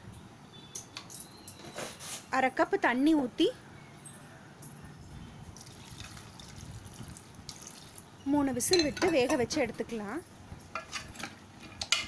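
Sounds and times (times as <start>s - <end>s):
water trickling into a pot: 5.5s - 9.3s.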